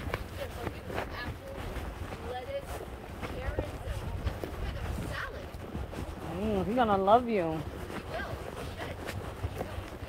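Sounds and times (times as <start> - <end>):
hooves knocking on trail: 0.0 - 10.0.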